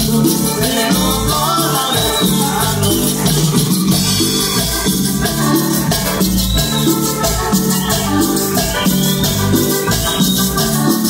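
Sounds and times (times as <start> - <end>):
drum kit: 0.0 - 11.0
electric bass: 0.0 - 11.0
keyboard: 0.0 - 11.0
shaken hand percussion: 0.0 - 11.0.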